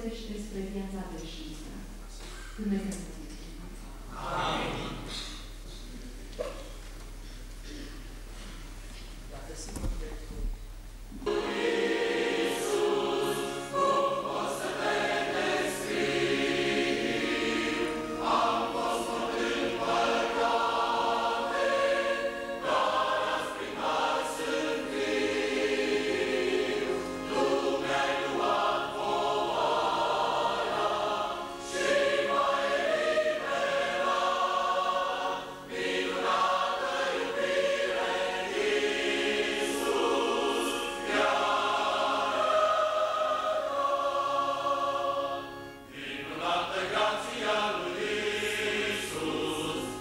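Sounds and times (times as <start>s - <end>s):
church choir singing a hymn: 4.1s - 5.6s, 11.2s - 50.0s.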